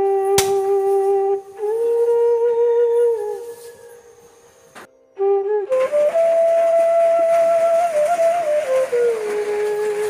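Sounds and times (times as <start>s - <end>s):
flute-like melody holding a note: 0.0s - 10.0s.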